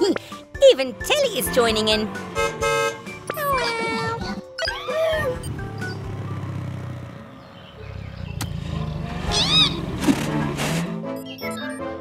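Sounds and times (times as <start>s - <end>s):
cartoon background music: 0.0s - 12.0s
squeaky cries: 3.3s - 5.5s, 9.2s - 9.9s.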